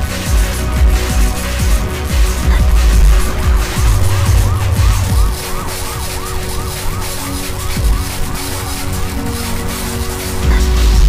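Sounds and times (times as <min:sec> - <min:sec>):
heavy bass kicks: 0:00.4 - 0:06.5
siren-like synth tone: 0:02.6 - 0:10.4.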